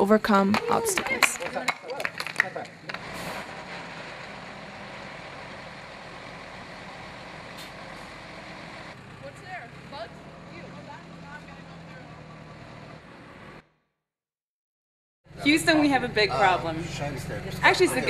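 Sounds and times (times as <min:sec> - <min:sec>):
distant voices calling out: 0:00.0 - 0:13.6
diesel truck engine idling: 0:00.0 - 0:13.7, 0:15.3 - 0:18.0.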